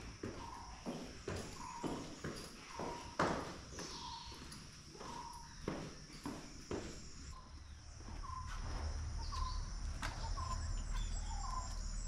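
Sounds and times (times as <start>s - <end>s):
footsteps on tiled stairs: 0.0s - 12.0s
insects droning: 0.0s - 12.0s.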